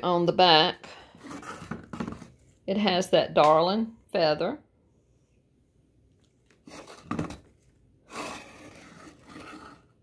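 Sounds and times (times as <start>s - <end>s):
ceramic scraping on wood: 1.1s - 2.3s, 8.1s - 10.0s.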